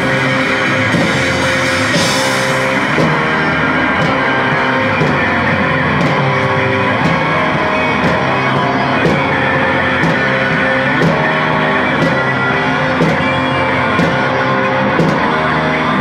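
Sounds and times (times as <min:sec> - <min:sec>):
drum kit: 0:00.0 - 0:16.0
electric guitar chords: 0:00.0 - 0:16.0.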